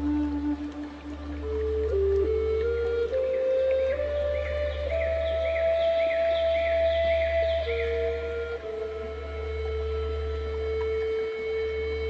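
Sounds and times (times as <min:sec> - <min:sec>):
slow meditation music: 0:00.0 - 0:12.0.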